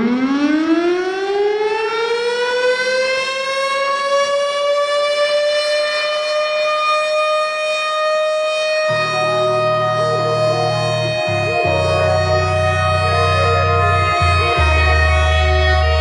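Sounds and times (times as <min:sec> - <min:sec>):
siren wail: 0:00.0 - 0:16.0.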